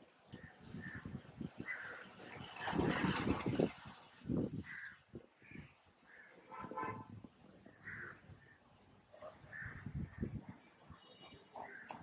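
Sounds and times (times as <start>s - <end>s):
crows cawing: 1.6s - 2.0s, 4.6s - 6.6s, 7.8s - 8.6s.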